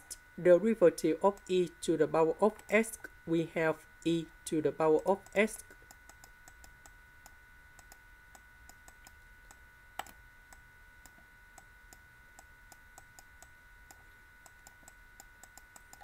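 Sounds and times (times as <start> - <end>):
faint electrical whine: 0.0 - 16.0.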